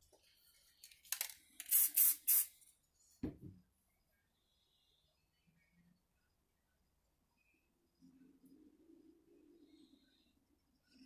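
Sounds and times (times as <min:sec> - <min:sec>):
spray hissing bursts: 0:01.7 - 0:02.5
knock: 0:03.2 - 0:03.6.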